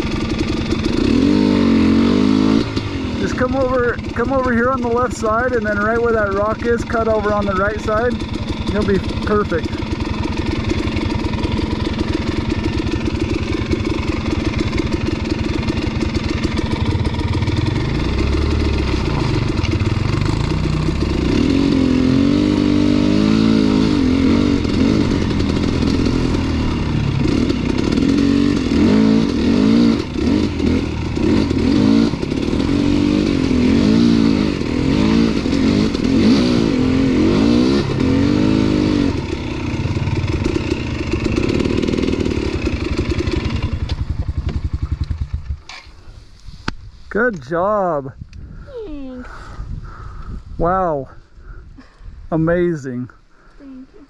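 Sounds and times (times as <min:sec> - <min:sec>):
dirt bike engine revving: 0:00.0 - 0:46.2.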